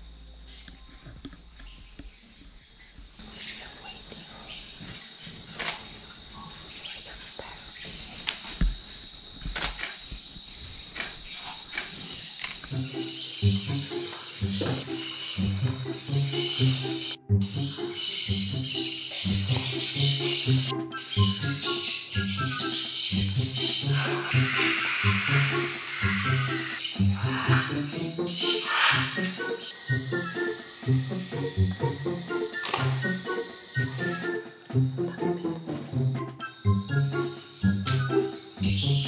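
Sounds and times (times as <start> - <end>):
insects buzzing: 0.0 - 39.0.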